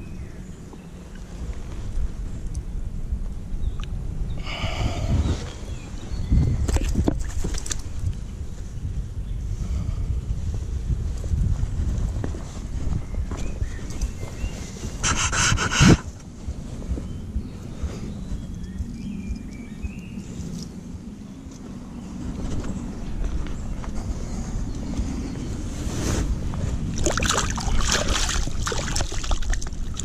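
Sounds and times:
low steady rumble: 0:00.0 - 0:30.0
scraping rustle: 0:10.5 - 0:17.2, 0:21.6 - 0:26.9.

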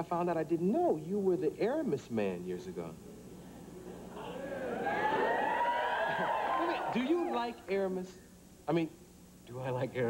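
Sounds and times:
audience whooping: 0:04.2 - 0:07.6.

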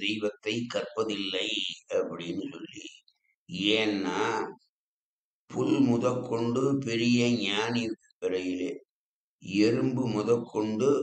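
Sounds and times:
man chanting: 0:05.5 - 0:08.8, 0:09.4 - 0:11.0.

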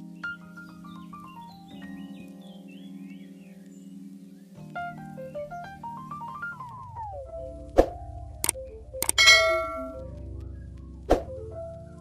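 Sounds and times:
soft background music: 0:00.0 - 0:12.0
mouse clicks: 0:08.4 - 0:09.8
bright bell ding: 0:09.2 - 0:10.0.

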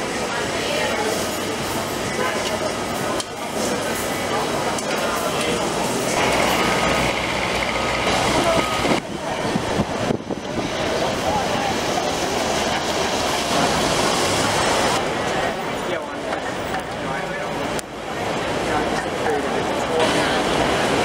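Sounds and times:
crowd chatter: 0:00.0 - 0:21.0
traffic noise: 0:00.0 - 0:21.0.

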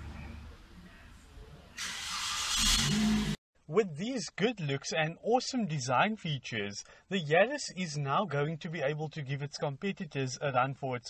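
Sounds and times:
car engine starting up: 0:01.8 - 0:03.4.

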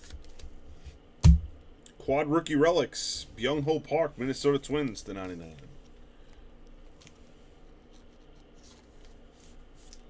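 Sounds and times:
low steady hum: 0:00.0 - 0:10.0
gloved hands rubbing card: 0:06.9 - 0:10.0.

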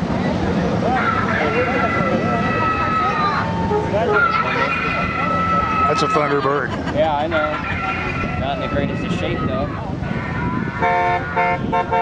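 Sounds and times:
car engines rumbling past: 0:00.0 - 0:12.0
crowd chatter: 0:00.0 - 0:12.0.

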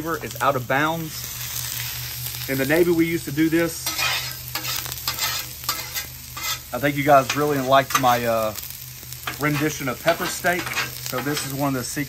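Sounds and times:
light sizzle: 0:00.0 - 0:12.0
spatula scraping griddle: 0:03.5 - 0:11.9.

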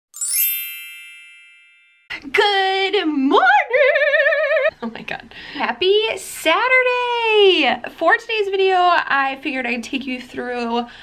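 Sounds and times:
bright ringing chime: 0:00.1 - 0:02.1.

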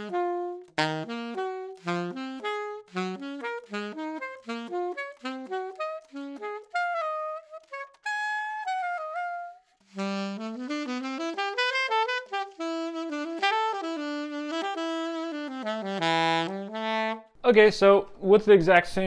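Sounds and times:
alto saxophone playing: 0:00.0 - 0:17.4.

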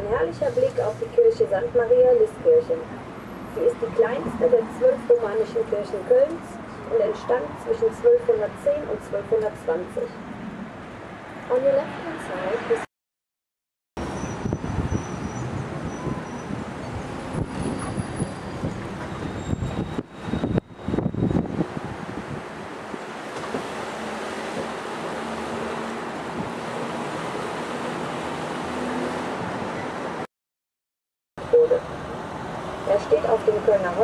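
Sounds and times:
wind buffeting microphone: 0:14.1 - 0:23.7.

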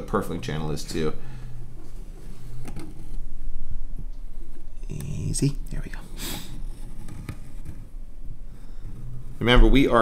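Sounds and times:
low workshop rumble: 0:00.0 - 0:10.0.

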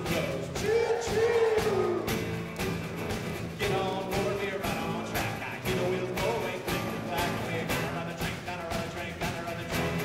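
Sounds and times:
acoustic guitar: 0:00.0 - 0:10.0
drum kit beat: 0:00.0 - 0:10.0
tuba: 0:00.0 - 0:10.0.

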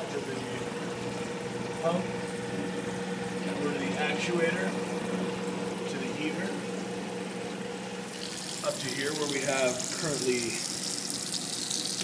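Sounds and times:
machine hum: 0:00.0 - 0:12.0
person speaking: 0:08.6 - 0:10.7.

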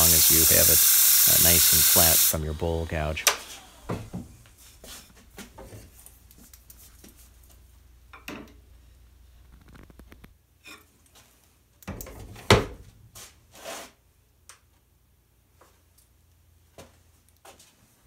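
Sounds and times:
wood lathe humming: 0:00.0 - 0:04.1
short scrape: 0:13.2 - 0:14.0.

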